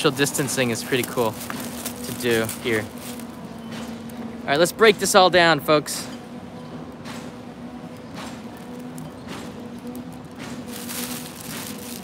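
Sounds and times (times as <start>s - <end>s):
footsteps on wet walkway: 0.0s - 4.0s, 8.2s - 12.0s
steady low hum: 0.0s - 12.0s.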